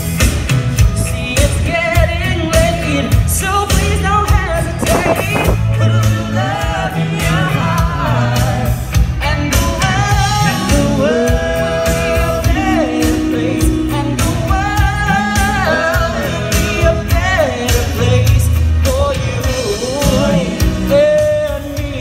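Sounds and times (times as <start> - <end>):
steady beat and bass line: 3.9 - 6.0
vocal group singing in harmony: 4.4 - 22.0.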